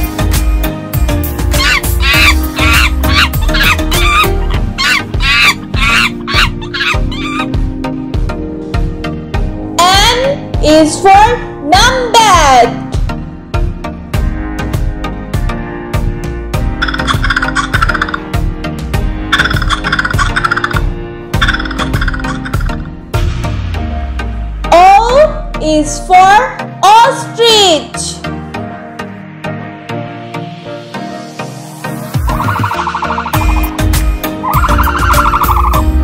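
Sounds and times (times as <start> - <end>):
background music: 0.0 - 36.0
monkey shrieking: 1.5 - 7.6, 16.8 - 18.2, 19.4 - 20.8, 21.4 - 22.8, 32.3 - 36.0.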